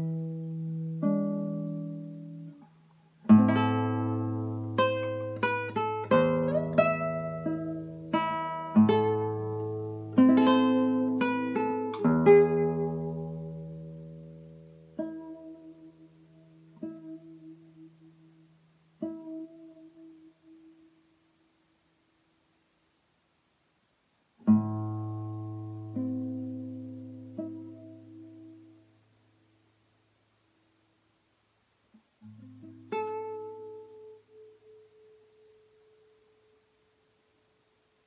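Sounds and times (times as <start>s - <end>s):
plucked classical guitar note: 0.0s - 20.9s, 24.4s - 28.9s, 32.2s - 35.6s.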